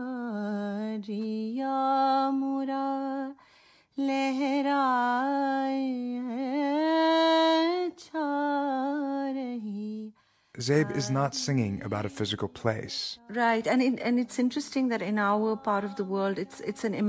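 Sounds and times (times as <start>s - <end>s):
woman singing unaccompanied: 0.0s - 3.4s, 4.0s - 11.7s, 13.2s - 17.0s.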